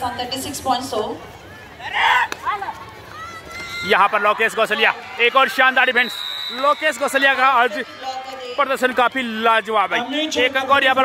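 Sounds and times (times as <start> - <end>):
players shouting: 1.4 - 11.0.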